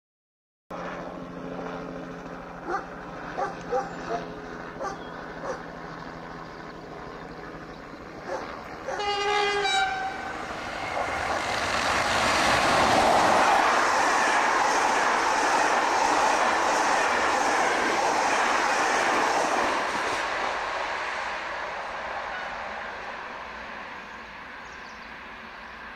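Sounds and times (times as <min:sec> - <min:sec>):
train passing wheel and rail noise: 0:08.2 - 0:25.9
train horn: 0:08.9 - 0:11.3.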